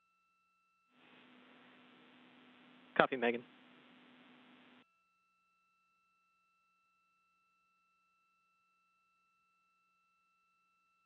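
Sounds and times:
faint radio hiss: 1.0 - 4.8.

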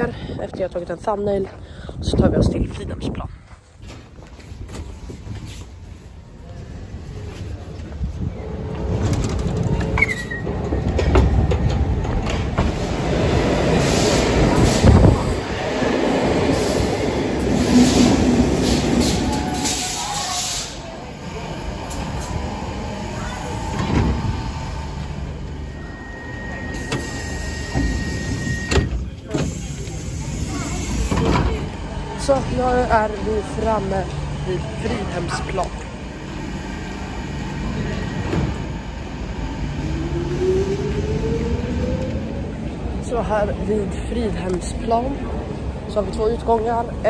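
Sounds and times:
metro train running through station: 0.0 - 47.0.

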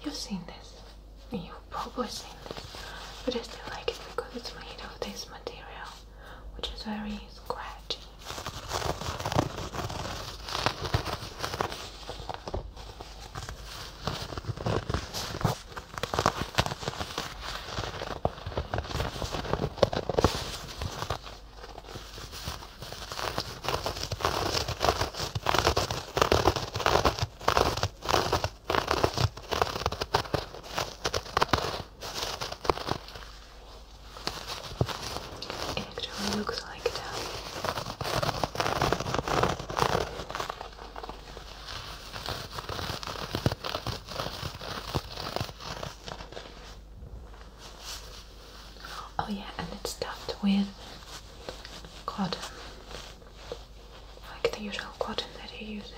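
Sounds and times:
scratchy rustling on microphone: 0.1 - 6.1, 6.7 - 55.9.

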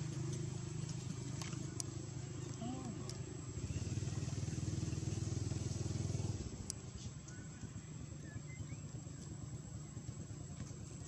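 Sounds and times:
motor engine running: 0.0 - 11.0.

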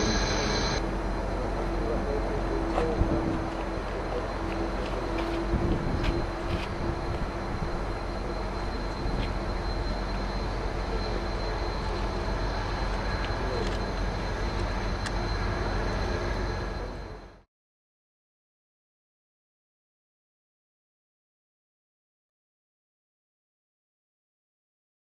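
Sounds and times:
jet engines at taxi power: 0.0 - 17.5.

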